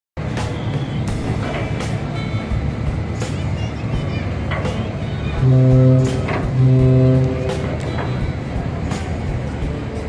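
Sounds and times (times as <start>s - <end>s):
low machinery rumble: 0.2s - 10.0s
music: 0.2s - 10.0s.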